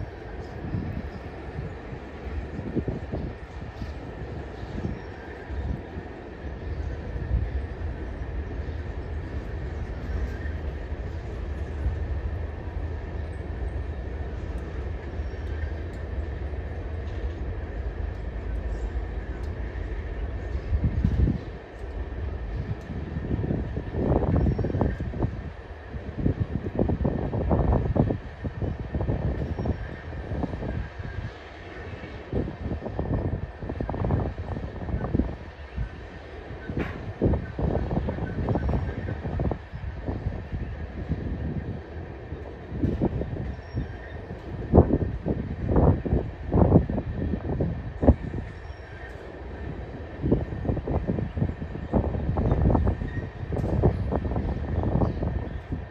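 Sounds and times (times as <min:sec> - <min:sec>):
train rumbling past: 0:00.0 - 0:55.9
train cars thumping and clanking: 0:36.5 - 0:39.6, 0:42.5 - 0:45.0.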